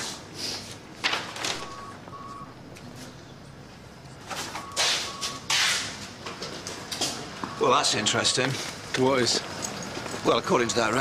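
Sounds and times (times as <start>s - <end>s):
short electronic beeps: 1.6s - 2.6s, 4.6s - 5.5s.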